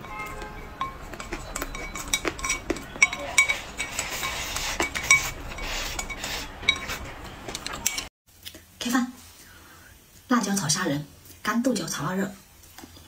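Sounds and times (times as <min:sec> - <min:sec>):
chopsticks clinking on ceramic bowl: 0:00.0 - 0:08.1.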